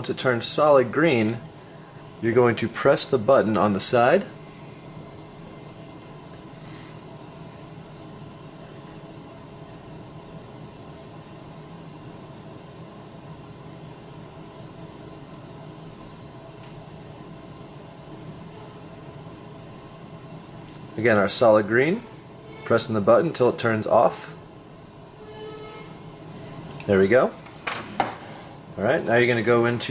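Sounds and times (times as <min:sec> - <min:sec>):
indoor background hum: 0:00.0 - 0:29.9.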